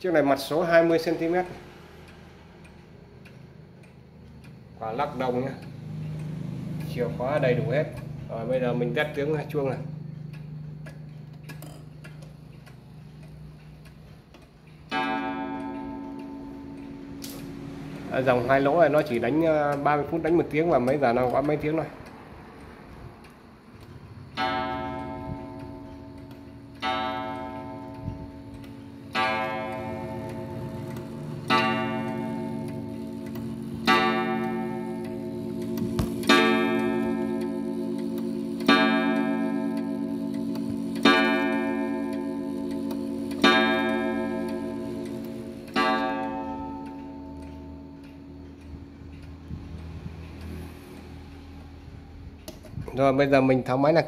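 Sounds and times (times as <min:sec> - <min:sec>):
clock striking a wire gong: 0:00.0 - 0:52.6.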